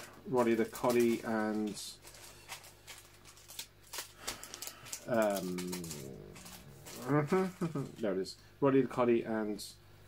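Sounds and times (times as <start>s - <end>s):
paper rustling: 0.0s - 8.0s.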